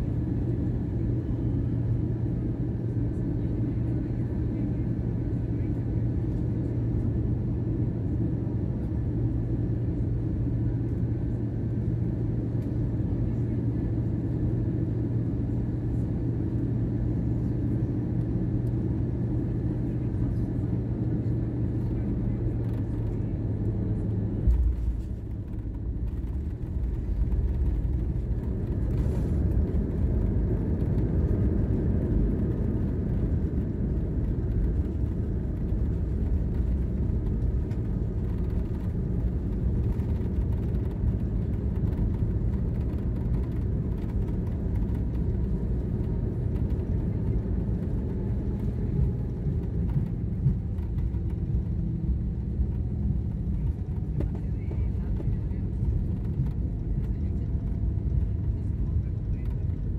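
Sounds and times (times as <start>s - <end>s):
airliner rolling on runway rumble: 0.0s - 59.9s
airplane cabin engine hum: 0.0s - 59.9s.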